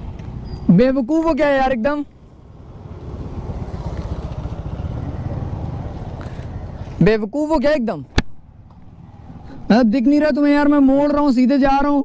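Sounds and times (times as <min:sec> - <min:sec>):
motorcycle engine low rumble: 0:00.0 - 0:07.4.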